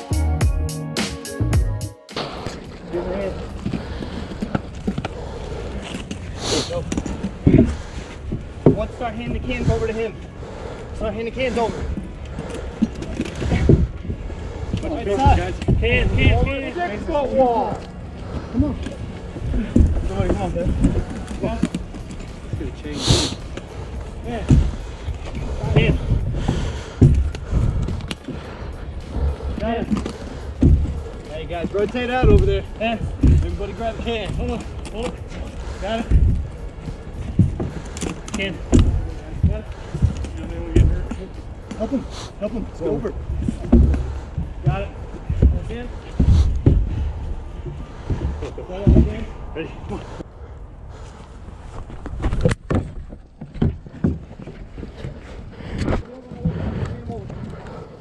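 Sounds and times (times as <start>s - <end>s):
footsteps: 1.0s - 58.0s
wind and handling rumble: 2.2s - 58.0s
sharp knocks: 29.0s - 42.0s.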